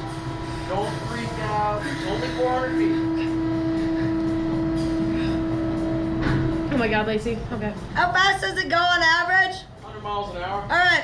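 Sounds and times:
ride machinery humming: 0:00.0 - 0:11.0.

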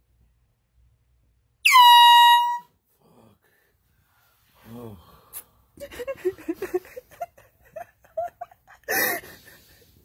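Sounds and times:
aerosol air horn honk: 0:01.6 - 0:02.7.

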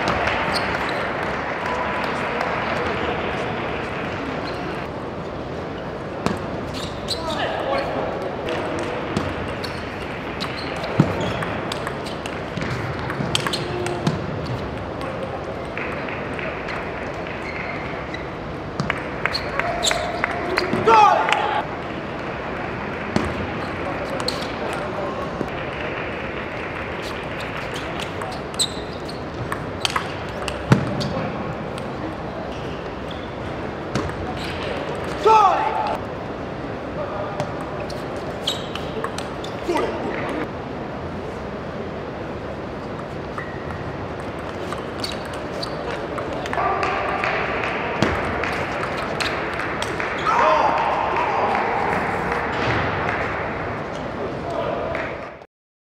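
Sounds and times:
person shouting: 0:35.2 - 0:36.0.

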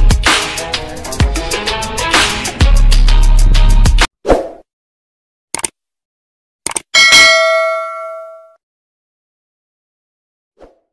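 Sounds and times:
notification bell ding: 0:07.0 - 0:08.6.

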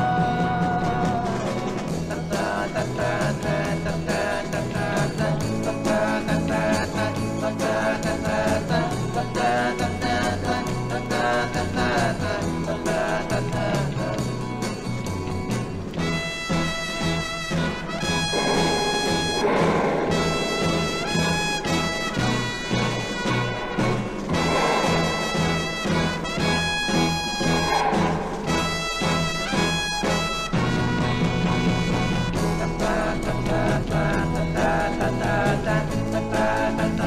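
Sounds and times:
drums: 0:00.0 - 0:37.0
trumpet long held notes: 0:16.0 - 0:32.6
pulsing bass line: 0:17.6 - 0:37.0.

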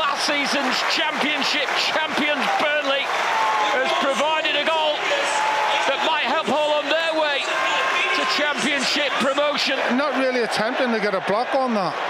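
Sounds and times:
man commentating: 0:00.0 - 0:12.0
stadium crowd hum: 0:00.0 - 0:12.0.

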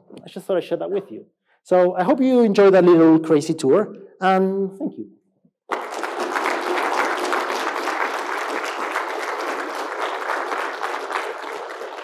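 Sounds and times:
audience applauding: 0:05.7 - 0:12.0.

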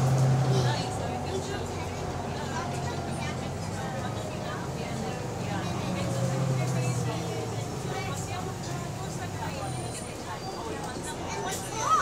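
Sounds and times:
bus engine running: 0:00.0 - 0:12.0.

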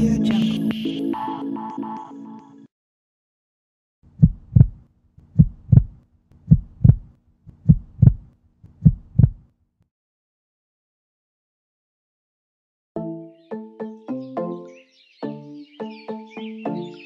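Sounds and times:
heartbeat thumps: 0:04.1 - 0:09.5.

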